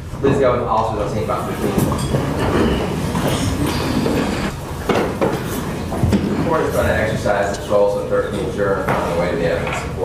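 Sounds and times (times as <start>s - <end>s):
people and papers rustling: 1.2s - 10.0s.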